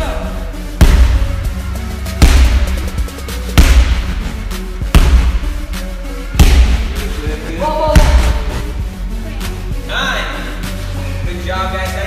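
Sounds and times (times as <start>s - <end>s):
background music with beat: 0.0s - 12.0s
slam ball hitting mat: 0.8s - 1.2s, 2.2s - 2.7s, 3.6s - 4.2s, 4.9s - 5.4s, 6.4s - 7.0s, 8.0s - 8.5s.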